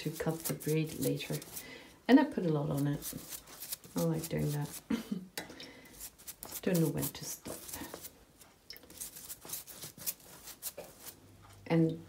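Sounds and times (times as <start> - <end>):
pastry brush strokes: 0.0 - 1.7, 2.4 - 4.9, 5.8 - 11.3.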